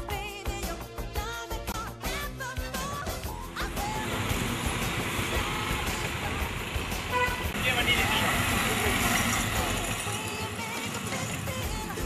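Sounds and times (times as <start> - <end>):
motorcycles and road traffic: 3.3 - 12.0
people's voices: 3.9 - 12.0
vehicle horn toots: 6.9 - 8.8.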